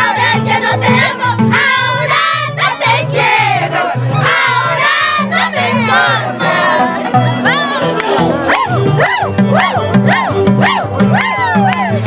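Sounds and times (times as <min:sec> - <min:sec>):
women singing together: 0:00.0 - 0:12.0.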